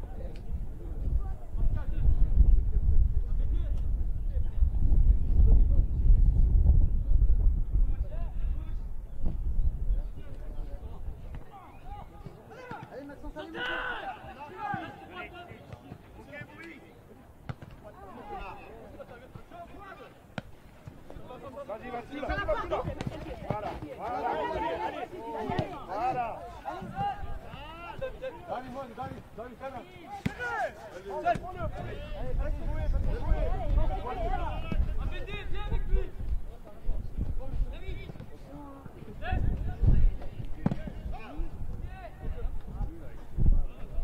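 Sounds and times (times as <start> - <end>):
players' voices calling: 10.3 - 36.9
ball kick: 22.3 - 24.2, 25.4 - 26.2, 31.2 - 32.0, 33.0 - 35.1, 39.4 - 41.9
ball kick thud: 39.5 - 41.8.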